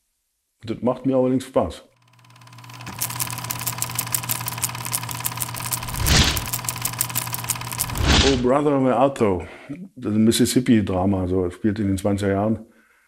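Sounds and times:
film projector whirring and clicking: 2.0 - 8.5.

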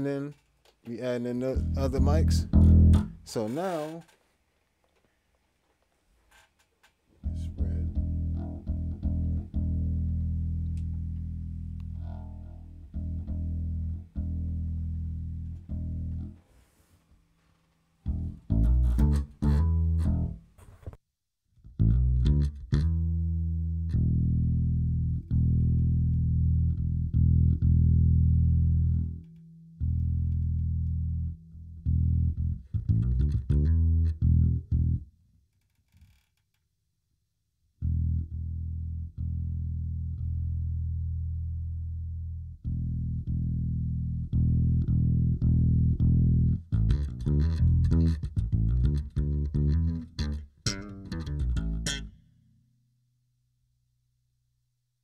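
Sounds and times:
electric bass guitar: 1.0 - 3.9, 7.2 - 16.4, 18.0 - 20.6, 21.6 - 35.1, 37.8 - 52.4.

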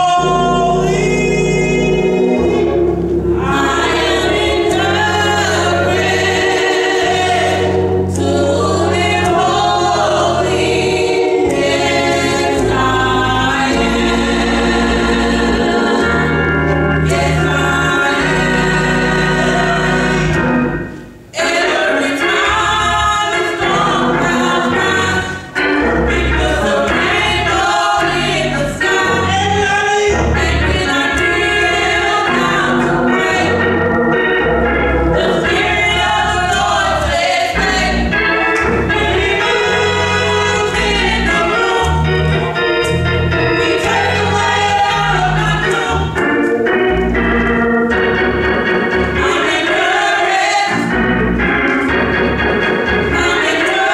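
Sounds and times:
gospel choir singing: 0.0 - 53.9
sustained organ notes: 0.0 - 53.9.

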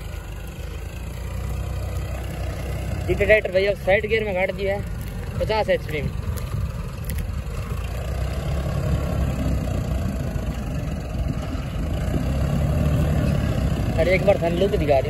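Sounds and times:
tractor diesel engine under load: 0.0 - 15.0.

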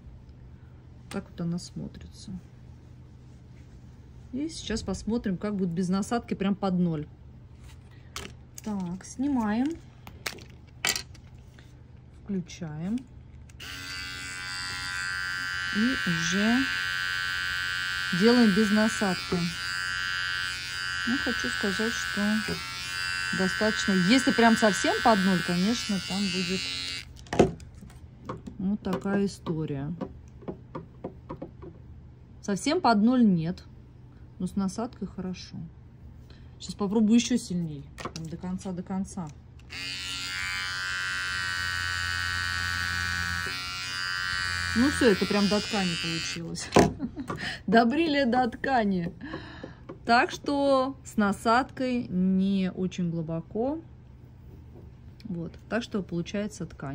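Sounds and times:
hair clipper buzzing: 13.5 - 27.2, 39.6 - 46.5.

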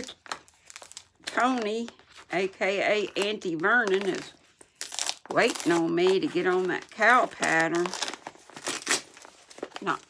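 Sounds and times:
package wrapping crinkling and tearing: 0.0 - 2.3, 3.0 - 10.0.

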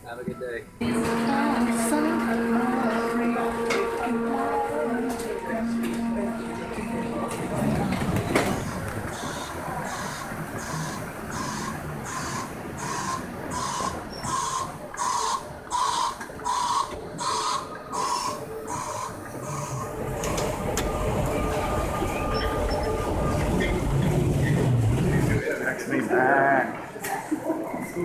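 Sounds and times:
steady mechanical hum: 0.7 - 26.1.

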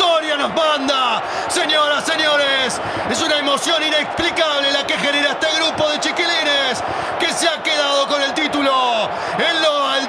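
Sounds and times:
man commentating: 0.0 - 10.0.

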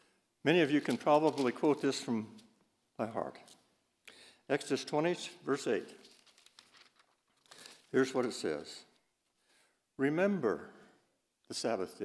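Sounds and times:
man's voice: 0.4 - 2.4, 4.5 - 6.0, 7.9 - 8.9
paper sheets rustling: 0.6 - 2.5, 5.7 - 8.0.

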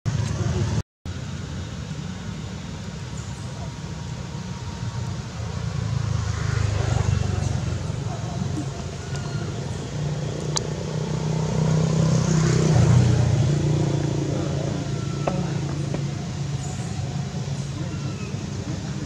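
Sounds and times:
vehicle engine humming: 0.1 - 19.0.

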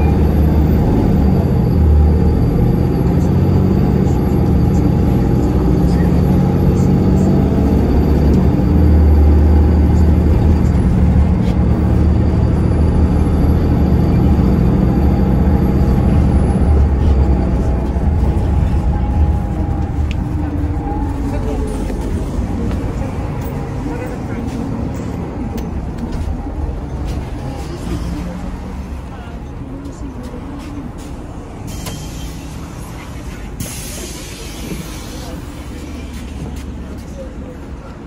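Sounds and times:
bus engine and road rumble: 0.0 - 38.0
passengers talking: 0.0 - 38.0.

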